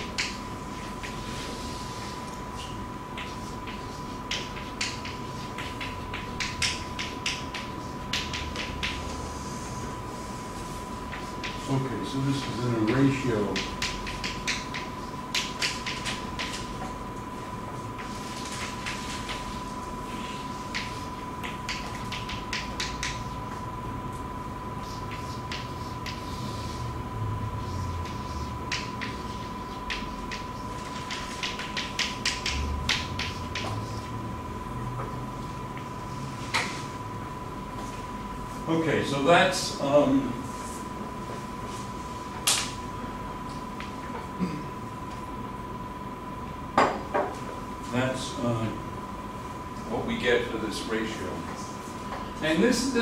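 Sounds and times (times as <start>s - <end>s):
chalk tapping and scraping: 0.2s - 9.7s, 24.8s - 26.9s
chalk writing on blackboard: 24.8s - 26.9s.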